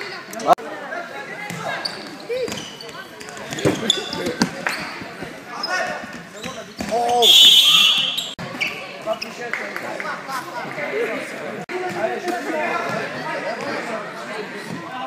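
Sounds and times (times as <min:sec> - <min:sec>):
referee's whistle blast: 0:07.2 - 0:08.4.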